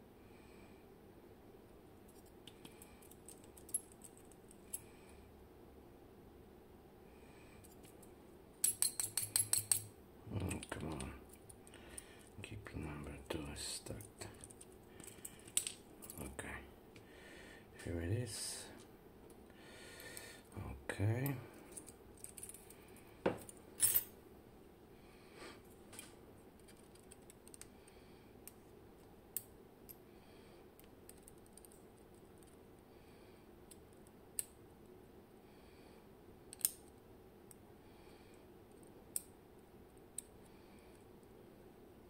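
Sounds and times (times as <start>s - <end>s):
small metal clicks of tweezers: 8.6s - 9.9s.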